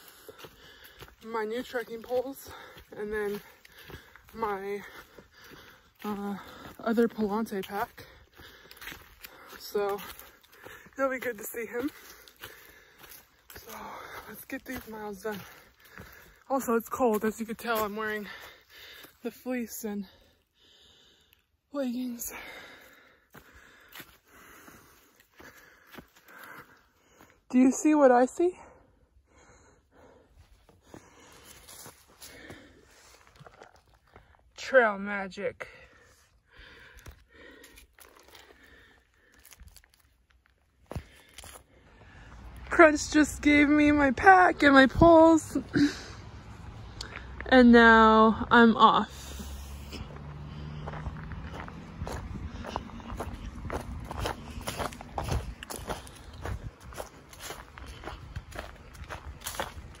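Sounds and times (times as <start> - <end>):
footsteps through dry leaves: 0.0 - 19.2, 31.1 - 33.9, 37.7 - 42.2, 49.2 - 60.0.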